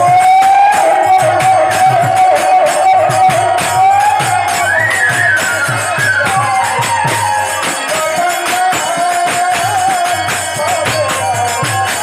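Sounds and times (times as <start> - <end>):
drum beat: 0.0 - 12.0
harmonium: 0.0 - 12.0
jingling hand percussion: 0.0 - 12.0.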